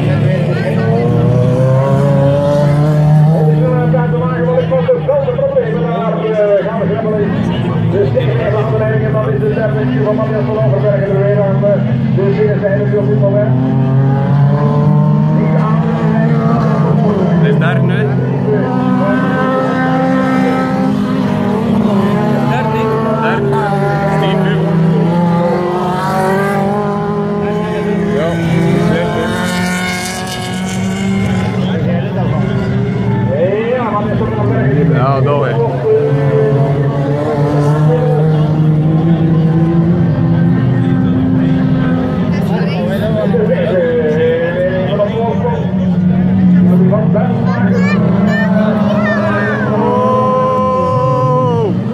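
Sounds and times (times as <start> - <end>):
race car engines revving: 0.0 - 51.9.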